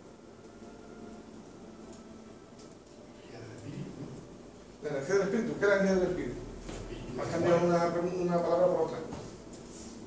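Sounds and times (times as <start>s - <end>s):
man speaking close to microphone: 4.8s - 9.3s.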